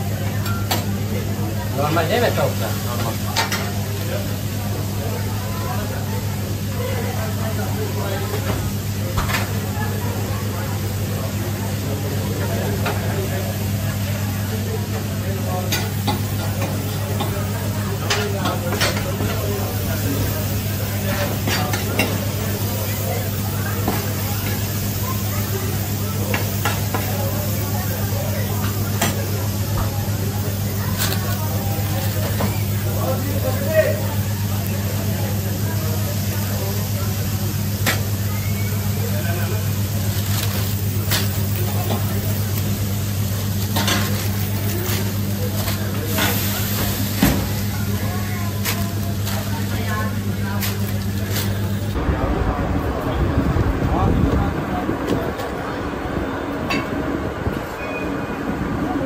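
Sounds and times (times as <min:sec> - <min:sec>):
meat sizzling in oil: 0:19.2 - 0:51.2
steady low hum: 0:47.9 - 0:59.0.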